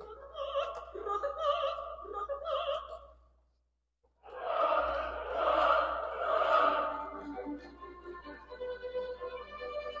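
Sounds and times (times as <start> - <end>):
chorus singing loudly: 4.2 - 7.4.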